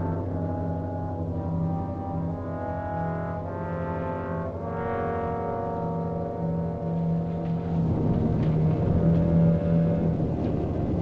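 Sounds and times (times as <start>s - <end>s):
slow dark orchestral music: 0.0s - 11.0s.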